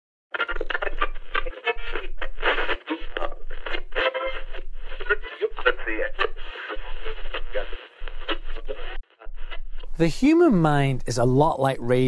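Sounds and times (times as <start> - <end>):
tinny speech through radio: 5.6 - 7.9.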